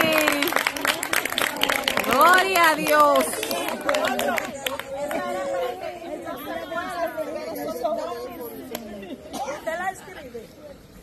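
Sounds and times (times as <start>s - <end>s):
women chattering: 0.0s - 11.0s.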